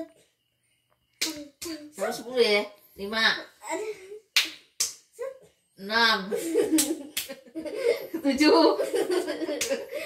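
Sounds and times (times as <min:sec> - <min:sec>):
sharp hand smacks: 0:01.2 - 0:01.8, 0:04.4 - 0:05.1, 0:06.8 - 0:07.4, 0:09.6 - 0:09.8.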